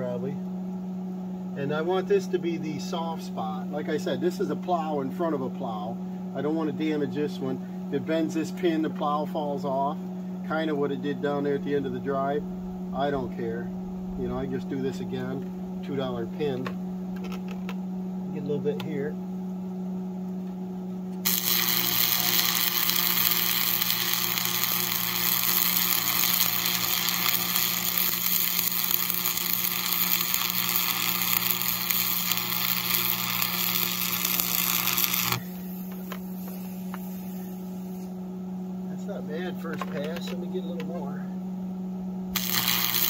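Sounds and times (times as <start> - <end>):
welder transformer humming: 0.0 - 43.0
welding arc crackling: 21.2 - 37.8, 42.3 - 43.0.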